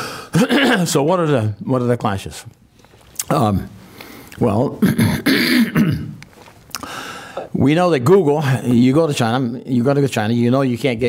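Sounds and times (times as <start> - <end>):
man clearing his throat: 0.4 - 0.9, 4.8 - 6.2.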